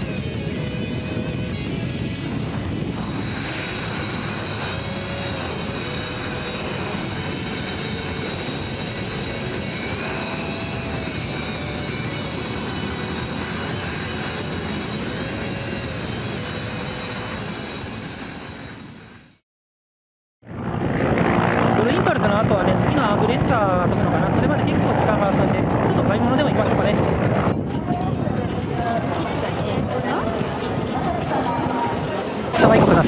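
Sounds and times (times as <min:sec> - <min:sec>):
background music: 0:00.0 - 0:19.0
jet engines taxiing: 0:00.0 - 0:19.3.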